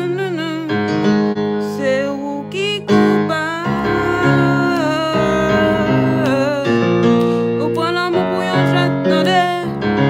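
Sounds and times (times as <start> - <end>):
person singing: 0.0 - 10.0
piano chords: 0.0 - 10.0.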